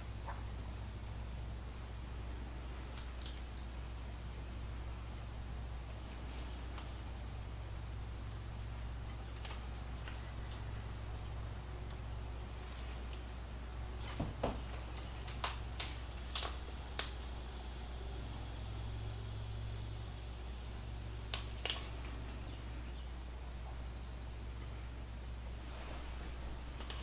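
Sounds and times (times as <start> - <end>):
low steady hum: 0.0 - 27.0.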